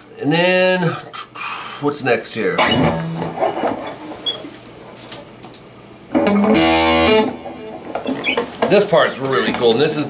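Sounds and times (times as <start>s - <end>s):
electric guitar notes: 2.6s - 3.6s, 6.1s - 8.2s
guitar handling sounds: 2.6s - 4.3s, 6.1s - 9.7s
loud electric guitar chord: 2.7s - 3.4s, 6.2s - 7.8s.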